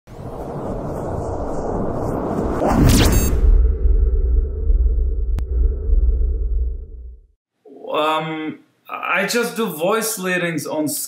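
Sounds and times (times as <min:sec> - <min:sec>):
noisy whoosh: 0:00.1 - 0:07.4
pitch sweep: 0:01.1 - 0:07.4
deep low boom rumbling: 0:02.8 - 0:07.4.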